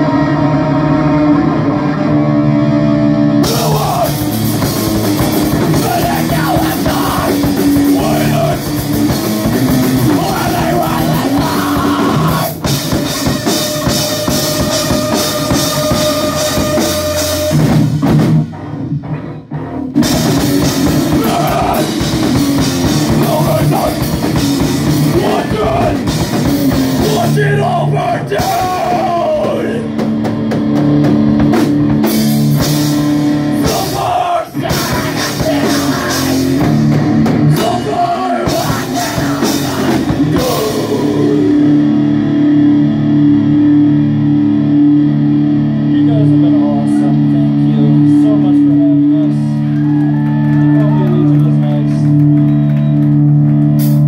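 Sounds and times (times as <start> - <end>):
distorted electric guitars: 0.0 - 54.0
drum kit pounding: 2.6 - 54.0.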